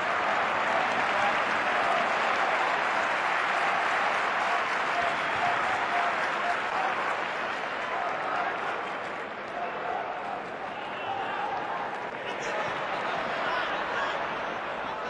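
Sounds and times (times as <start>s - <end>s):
crowd clapping and cheering: 0.0s - 15.0s.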